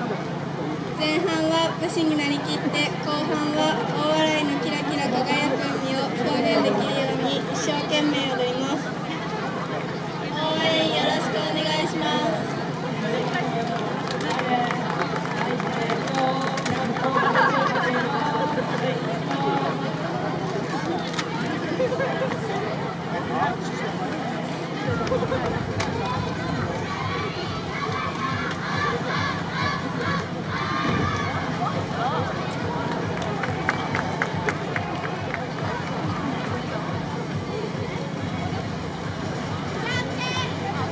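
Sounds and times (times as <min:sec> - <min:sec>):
crowd chatter: 0:00.0 - 0:40.9
dancers calling out: 0:26.7 - 0:31.6.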